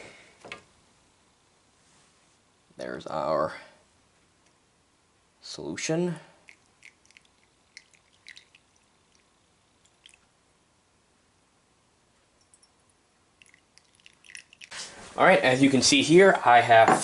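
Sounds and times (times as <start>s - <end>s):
liquid dripping: 6.4s - 10.3s, 12.4s - 14.8s.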